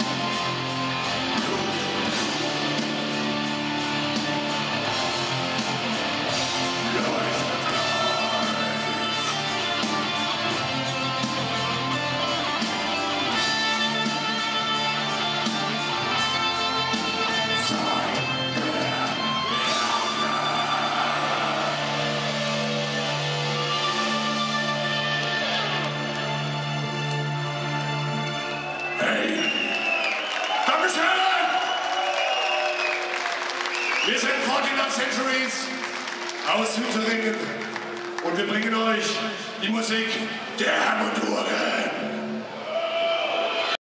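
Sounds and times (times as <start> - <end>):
audience noise: 0.0 - 43.8.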